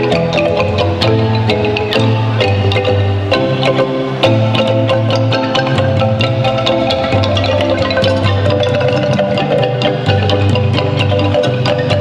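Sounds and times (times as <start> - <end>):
wooden xylophone ensemble march: 0.0 - 12.0.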